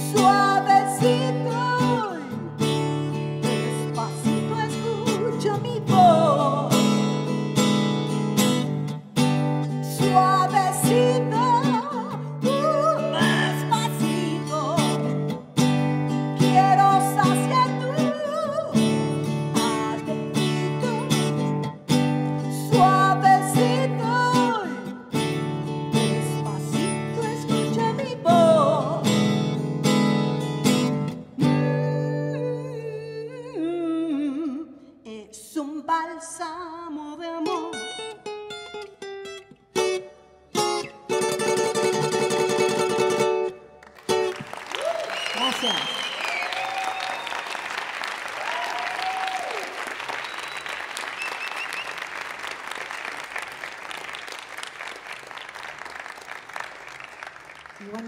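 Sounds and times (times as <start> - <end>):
woman singing: 0.0 - 7.4, 9.7 - 15.4, 16.1 - 29.6, 31.4 - 38.0
acoustic guitar strumming: 0.0 - 32.7, 37.4 - 44.6
audience applauding and cheering: 43.8 - 58.0.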